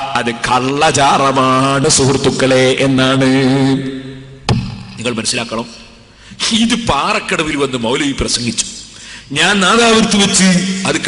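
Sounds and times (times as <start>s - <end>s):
man chanting melodically: 0.0s - 5.8s.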